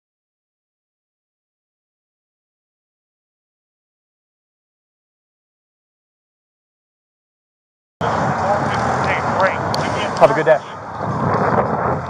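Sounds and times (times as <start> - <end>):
indistinct voices: 8.0 - 10.9
vehicle engine and road noise: 8.0 - 12.0.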